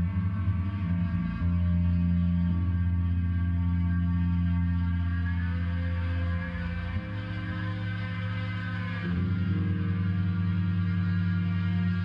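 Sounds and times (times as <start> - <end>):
band droning low notes: 0.0 - 12.0.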